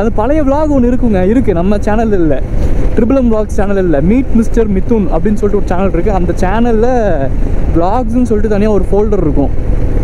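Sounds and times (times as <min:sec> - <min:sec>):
man talking: 0:00.0 - 0:09.6
motorcycle engine running: 0:00.0 - 0:10.0
wind rush on microphone: 0:00.0 - 0:10.0.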